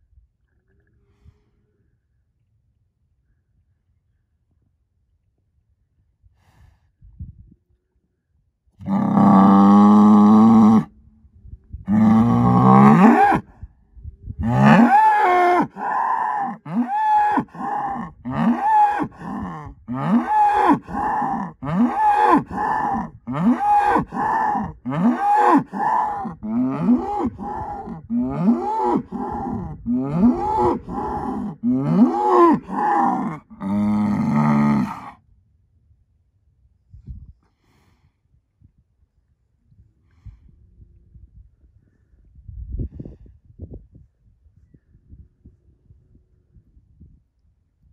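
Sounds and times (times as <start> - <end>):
bull bellowing: 8.8 - 10.9, 11.9 - 13.5, 14.4 - 35.2.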